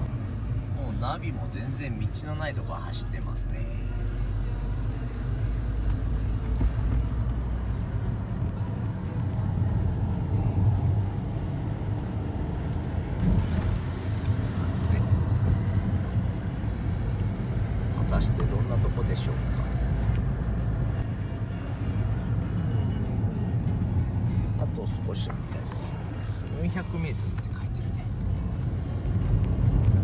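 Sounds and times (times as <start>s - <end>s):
car engine and road rumble: 0.0s - 30.0s.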